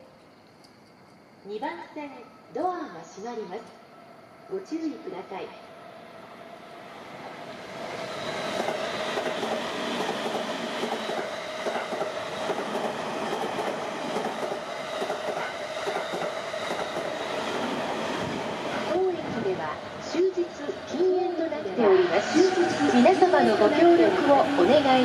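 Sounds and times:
electric train running past: 0.0s - 25.0s.

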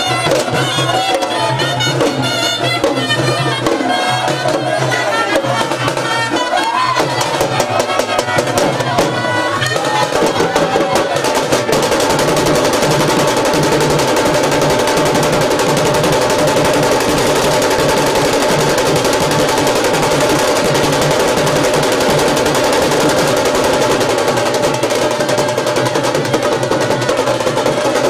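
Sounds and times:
street band drums: 0.0s - 28.0s.

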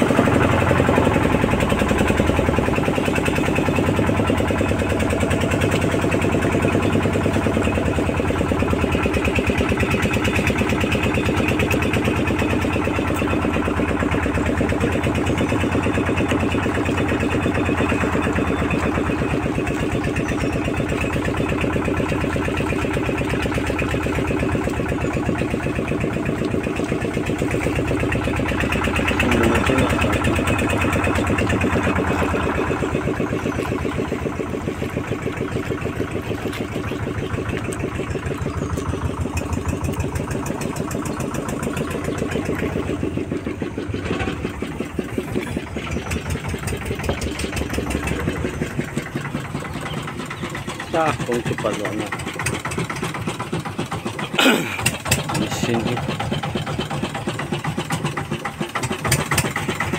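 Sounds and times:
small boat engine running: 0.0s - 59.9s.

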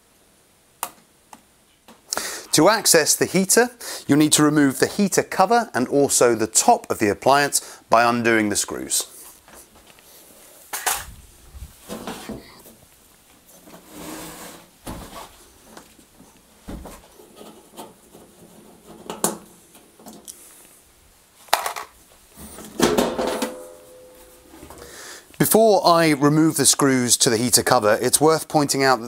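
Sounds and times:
sheet metal lid clattering: 22.4s - 24.9s.

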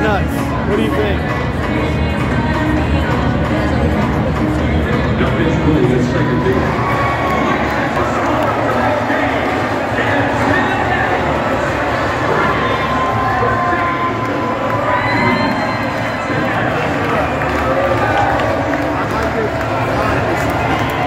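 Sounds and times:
stadium crowd cheering: 5.7s - 21.0s.

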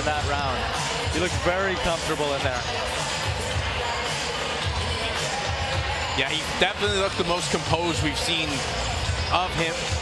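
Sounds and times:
music with steady bass beat: 0.0s - 10.0s.

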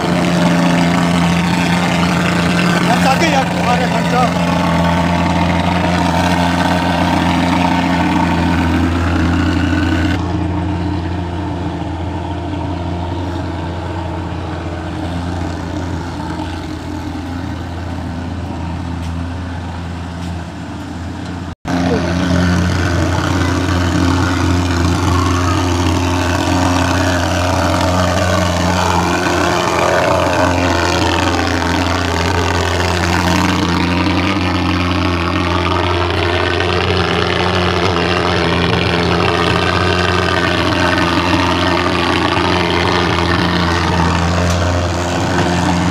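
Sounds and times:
fogging machine droning: 0.0s - 45.9s.

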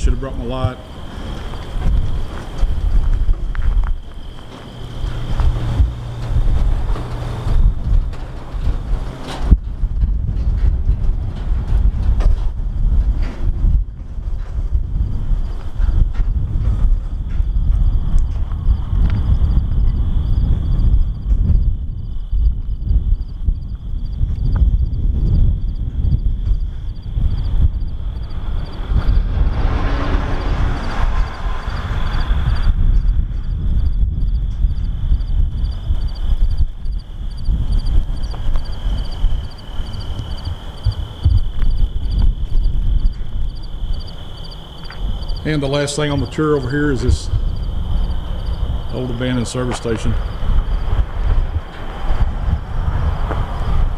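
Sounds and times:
rushing noise: 0.0s - 21.0s, 26.7s - 53.9s
wind buffeting microphone: 0.0s - 53.9s.

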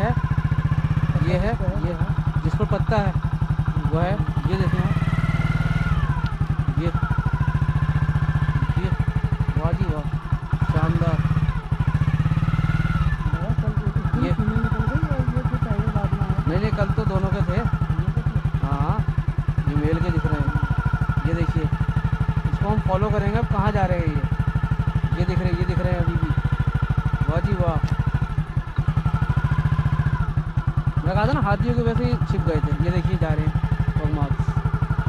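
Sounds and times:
motorcycle engine running: 0.0s - 35.0s.

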